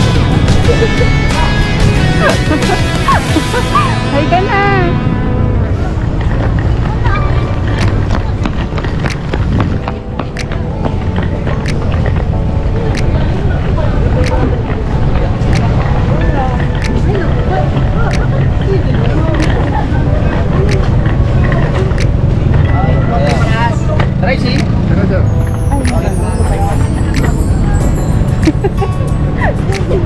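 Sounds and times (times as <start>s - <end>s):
people talking nearby: 1.2s - 9.1s, 10.6s - 30.0s.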